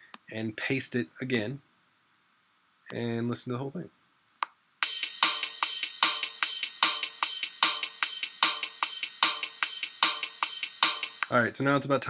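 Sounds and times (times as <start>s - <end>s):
drum loop: 4.8s - 11.5s.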